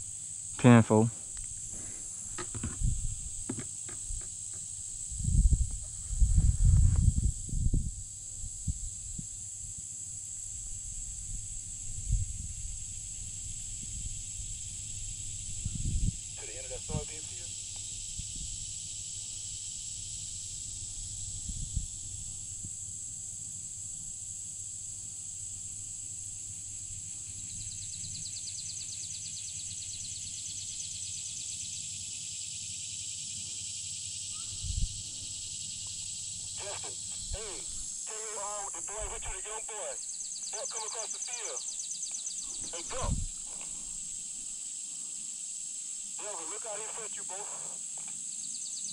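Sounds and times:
high-pitched insect chorus: 0.0s - 48.9s
low rumbles of wind: 1.2s - 24.4s, 34.3s - 36.2s, 42.4s - 44.4s
short pitched call: 36.6s - 41.7s.

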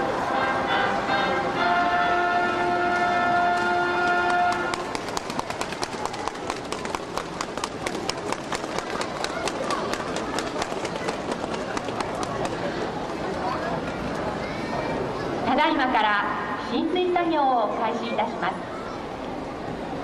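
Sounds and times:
crowd chatter: 0.0s - 20.0s
crowd applauding: 4.0s - 13.2s.

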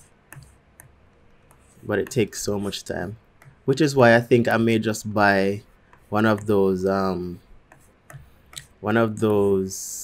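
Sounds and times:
computer mouse clicks: 0.3s - 2.2s, 7.7s - 8.8s
man speaking: 1.8s - 7.4s, 8.6s - 10.0s.

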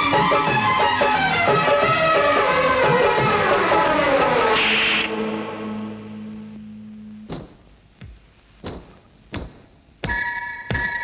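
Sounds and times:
sharp ringing percussive strikes: 8.6s - 11.0s.

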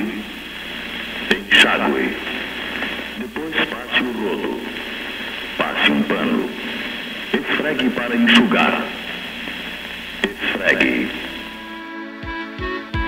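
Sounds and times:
person speaking through radio speaker: 0.0s - 11.6s.

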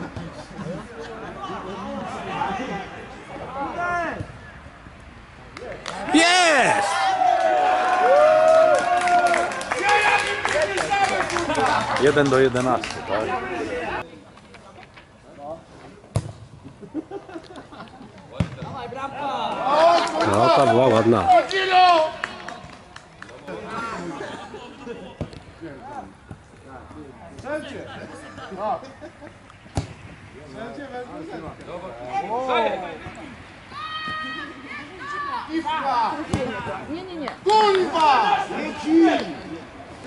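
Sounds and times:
players shouting: 5.9s - 12.1s, 18.8s - 22.7s, 32.0s - 39.6s
football being kicked: 16.1s - 16.4s, 18.4s - 18.8s.

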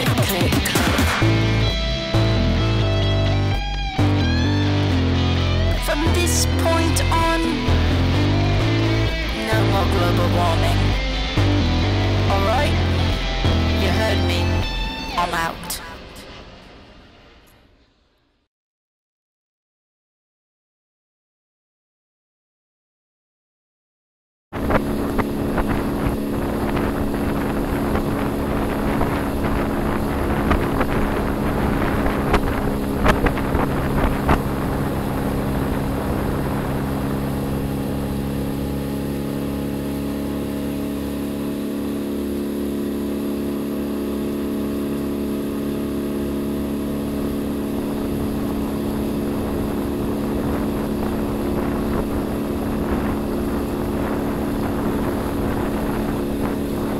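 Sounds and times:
outboard motor running: 0.0s - 15.5s, 24.6s - 56.9s
wind on microphone: 24.6s - 39.1s, 46.4s - 56.9s.

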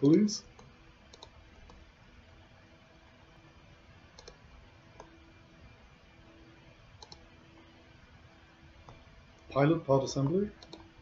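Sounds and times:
faint computer mouse clicks: 0.5s - 1.8s, 4.2s - 4.4s, 7.0s - 7.2s, 10.2s - 10.9s.

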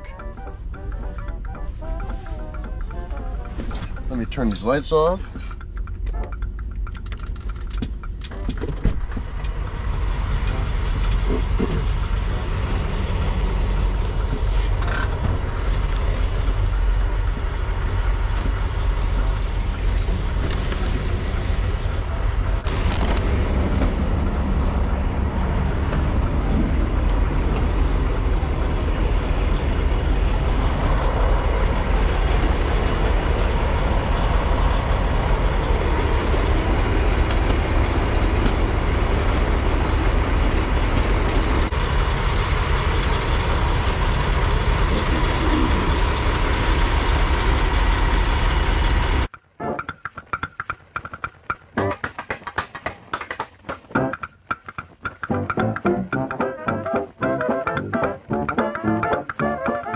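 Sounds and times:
diesel trucks idling: 0.0s - 49.8s
background music with brass: 55.3s - 59.9s.

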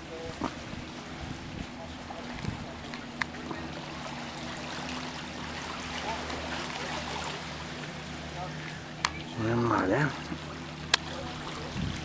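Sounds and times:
small waves lapping on rocks: 0.0s - 12.0s.

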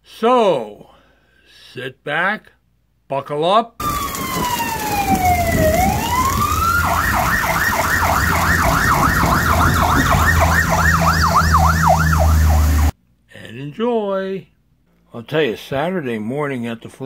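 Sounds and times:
emergency vehicle siren: 3.8s - 12.9s.

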